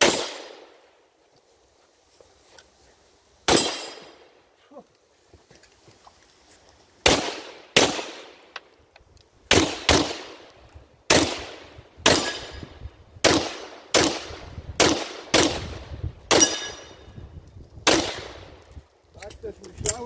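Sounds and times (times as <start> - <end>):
handgun shots with echo: 0.0 - 0.7, 3.5 - 4.2, 11.1 - 12.6, 16.3 - 17.0.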